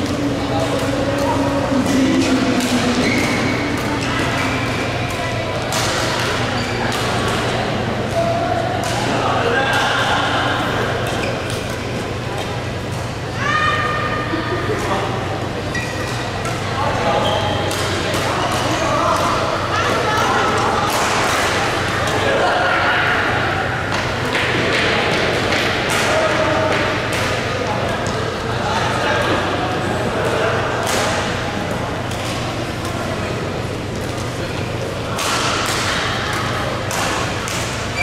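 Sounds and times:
racket hitting shuttlecock: 0:00.0 - 0:07.5, 0:35.2 - 0:38.0
chatter of voices in a hall: 0:00.0 - 0:38.0
steady low hum: 0:00.0 - 0:38.0.

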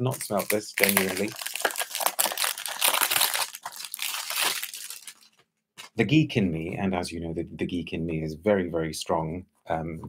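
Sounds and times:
cellophane tearing and crinkling: 0:00.0 - 0:05.4.

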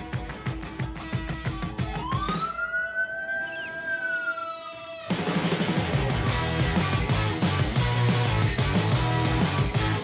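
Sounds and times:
rock band drums and guitar: 0:00.0 - 0:02.4, 0:05.0 - 0:10.0
siren wail: 0:01.8 - 0:05.6.

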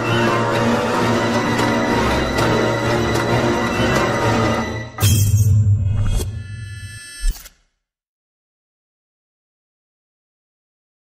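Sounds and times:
dramatic film music: 0:00.0 - 0:06.7.

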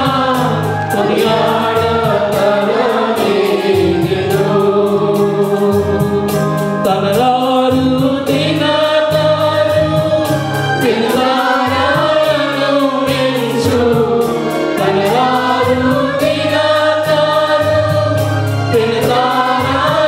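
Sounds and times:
mixed choir singing worship song: 0:00.0 - 0:20.0.

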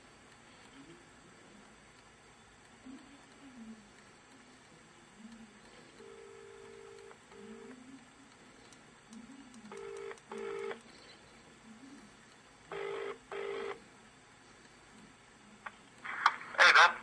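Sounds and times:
telephone ringing tone: 0:06.0 - 0:07.7, 0:09.7 - 0:10.8, 0:12.7 - 0:13.8.

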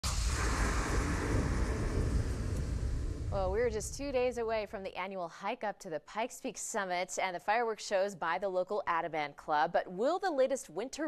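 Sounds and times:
rushing hiss: 0:00.0 - 0:04.5
deep steady rumble: 0:00.0 - 0:04.9.

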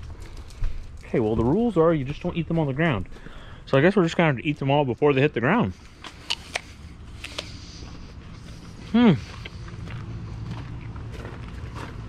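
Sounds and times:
person chewing crisp apple: 0:05.8 - 0:12.0.

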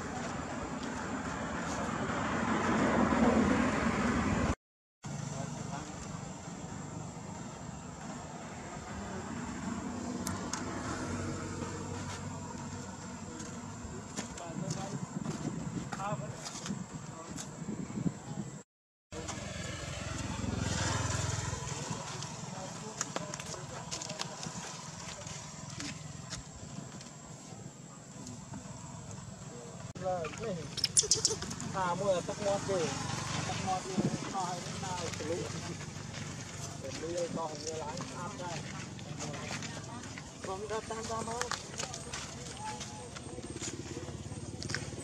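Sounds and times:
infant monkey squeak: 0:30.7 - 0:31.6.

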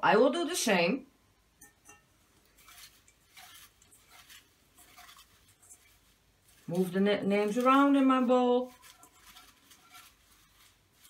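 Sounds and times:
paper slips rustling: 0:02.6 - 0:11.0.

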